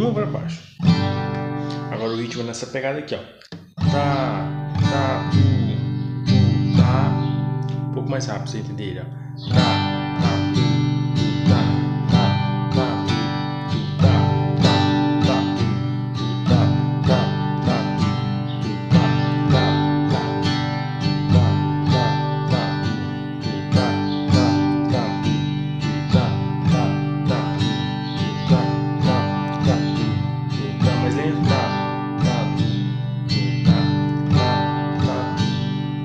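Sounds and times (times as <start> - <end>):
acoustic guitar strumming: 0.0 - 2.7, 3.5 - 36.0.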